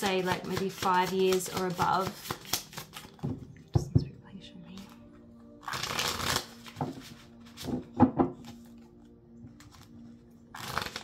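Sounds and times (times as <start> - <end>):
faint background music: 0.0 - 11.0
cards riffle shuffling: 0.2 - 3.2, 5.6 - 7.8, 10.6 - 11.0.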